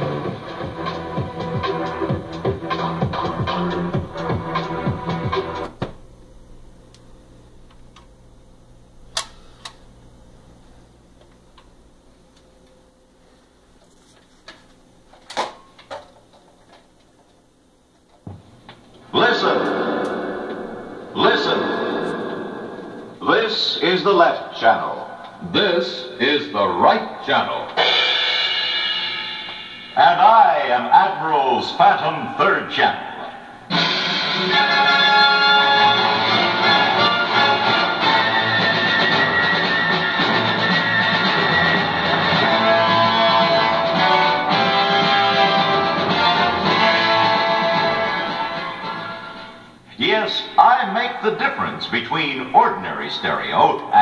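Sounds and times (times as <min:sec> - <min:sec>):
radio music through speakers: 0:00.0 - 0:08.1, 0:18.2 - 0:27.8, 0:48.8 - 0:54.0
faint steady hum: 0:00.0 - 0:54.0
cymbal crash ringing: 0:19.2 - 0:23.2, 0:27.8 - 0:31.0.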